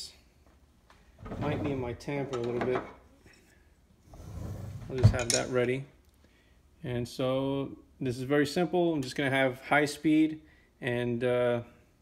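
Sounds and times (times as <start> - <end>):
muffled handling noise: 4.8 - 5.6.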